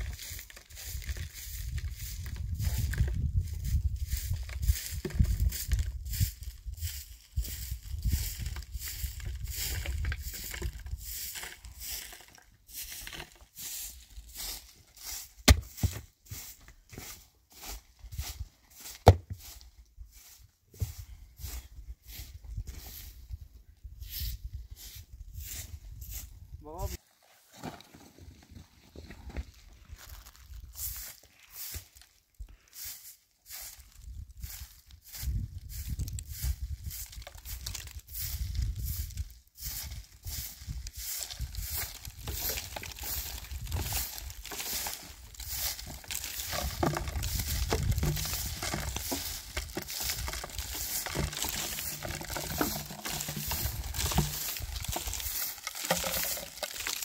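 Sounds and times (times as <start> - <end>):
broom sweeping stony ground: 0.0 - 28.3, 29.0 - 57.0.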